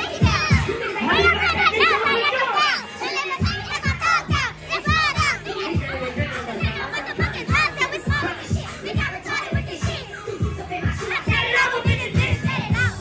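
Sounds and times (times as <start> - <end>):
hip hop music over sound system: 0.0 - 13.0
women singing and shouting: 0.0 - 13.0.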